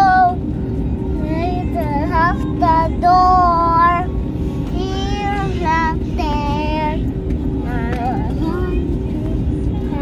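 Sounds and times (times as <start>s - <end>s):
girl singing: 0.0s - 0.4s, 1.2s - 4.1s, 4.7s - 7.0s, 7.6s - 10.0s
airliner cabin drone: 0.0s - 10.0s.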